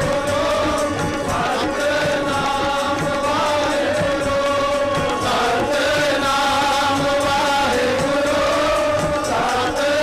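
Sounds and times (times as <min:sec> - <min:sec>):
instrumental accompaniment: 0:00.0 - 0:10.0
men's chorus singing in unison: 0:00.0 - 0:10.0.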